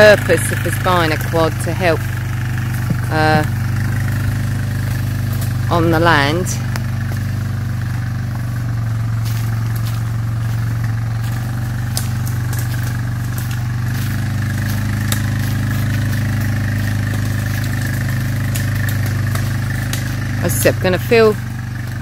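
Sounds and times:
quad bike engine running: 0.0 - 22.0.

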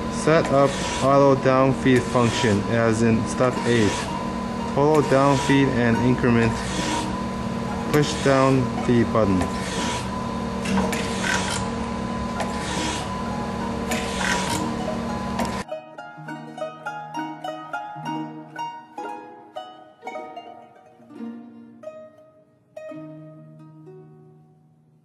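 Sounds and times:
plucked string music: 0.0 - 9.4, 13.1 - 25.0
grinder hiss: 0.0 - 15.6
surface grinder humming and whining: 0.0 - 15.7.

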